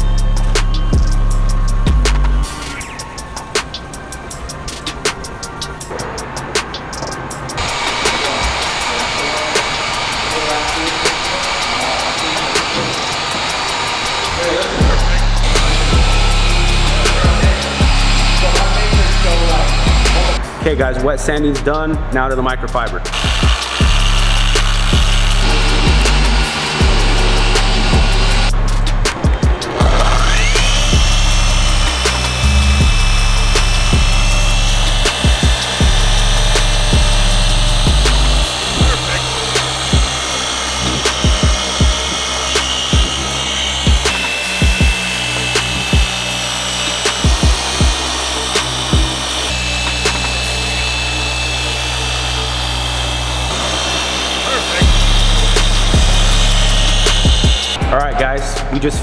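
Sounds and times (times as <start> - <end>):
car polisher motor whine: 0.0 - 20.8, 21.4 - 58.0
music with heavy bass: 0.0 - 59.0.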